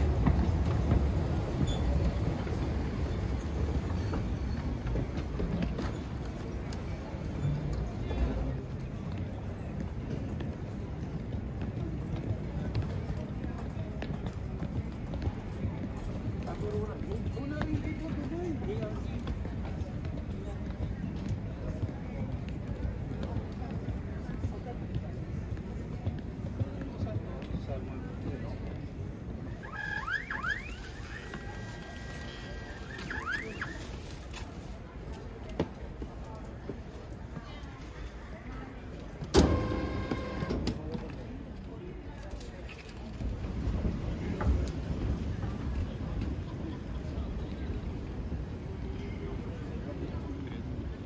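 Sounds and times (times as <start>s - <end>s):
footsteps: 11.2s - 38.1s
short rising squeaks: 29.6s - 33.9s.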